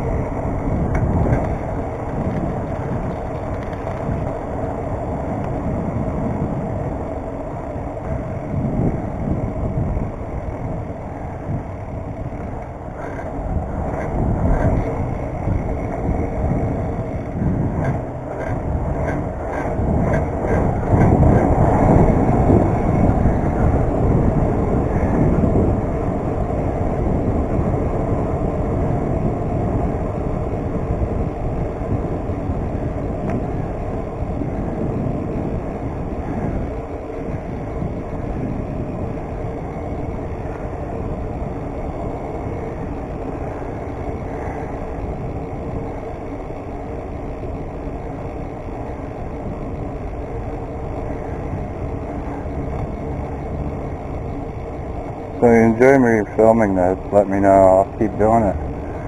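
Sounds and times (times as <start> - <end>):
bike tyre rumble on pavement: 0.0 - 59.0
wind rush: 0.0 - 59.0.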